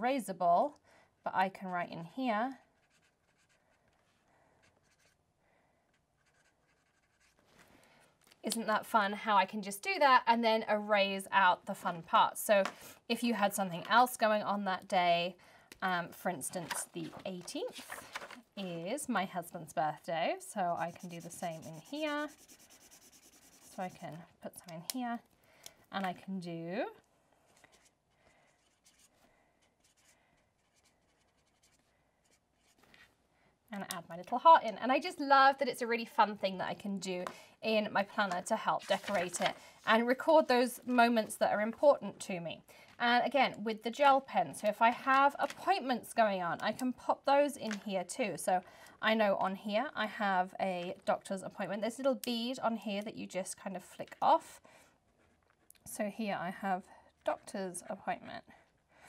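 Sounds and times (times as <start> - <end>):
eraser tip scratching paper: 2.6 - 5.2, 5.9 - 7.5, 20.6 - 24.3, 27.5 - 32.9.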